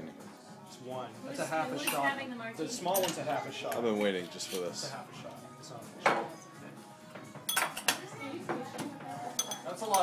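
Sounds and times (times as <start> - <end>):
glassware and shaker clinking: 2.9 - 4.9, 7.3 - 8.0, 9.2 - 10.0.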